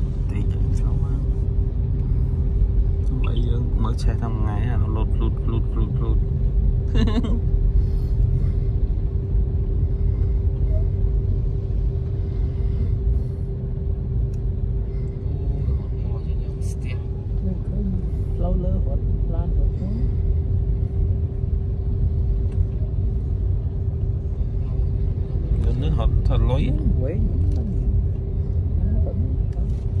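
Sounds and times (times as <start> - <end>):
car road rumble inside cabin: 0.0 - 30.0
constant hum: 0.0 - 30.0.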